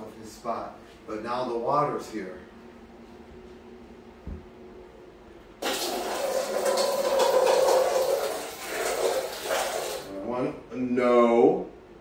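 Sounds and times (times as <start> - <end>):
brief thump: 4.2 - 4.5
water pouring into metal bowl: 5.6 - 10.1.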